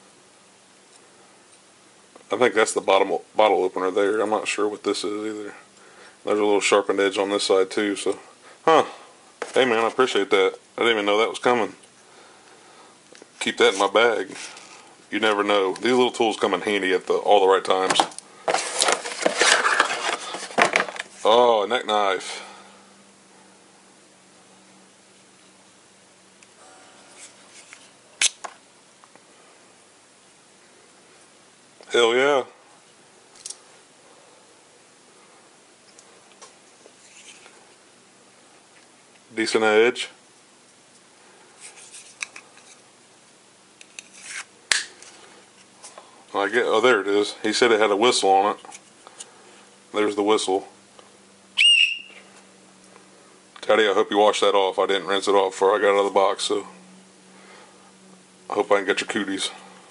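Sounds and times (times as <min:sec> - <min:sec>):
cardboard box rustling: 0:18.4 - 0:21.2
knife scraping in sheath: 0:44.0 - 0:44.5.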